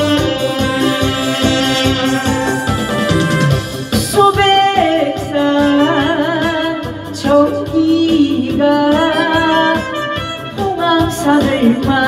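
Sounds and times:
instrumental backing: 0.0s - 12.0s
person singing with vibrato: 0.0s - 12.0s.

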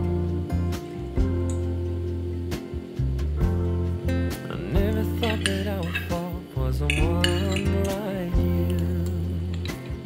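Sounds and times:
background song with singing: 4.3s - 10.0s
cutlery clinking against a dish: 5.0s - 10.0s.

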